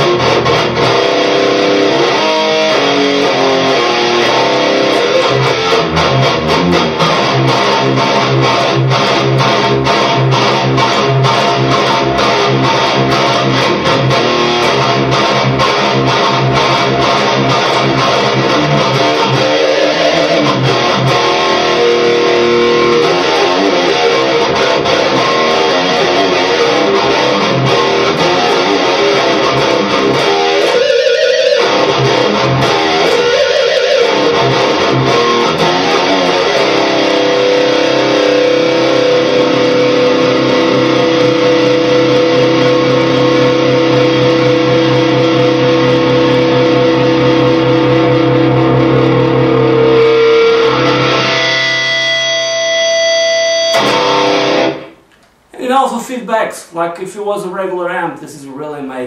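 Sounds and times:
electric guitar riff: 0:00.0 - 0:56.0.

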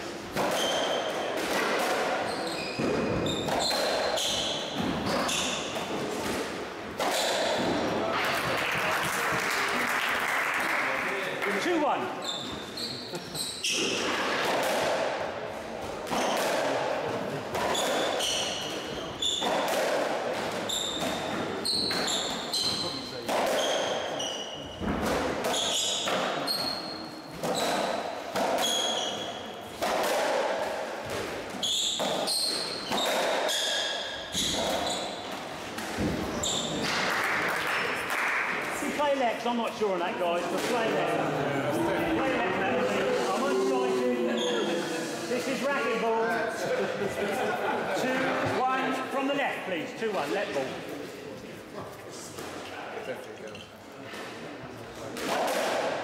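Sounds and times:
ball hitting racquets and walls: 0:00.2 - 0:08.9, 0:13.6 - 0:38.7, 0:40.4 - 0:41.0, 0:55.1 - 0:56.0
shoes squeaking on wooden floor: 0:02.2 - 0:06.2, 0:12.2 - 0:14.2, 0:17.6 - 0:19.6, 0:20.7 - 0:24.9, 0:31.5 - 0:35.4, 0:36.0 - 0:36.9.

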